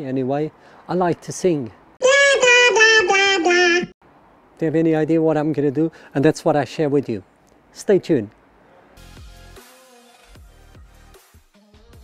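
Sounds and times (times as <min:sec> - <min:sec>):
cartoon voice singing: 0:02.0 - 0:03.9.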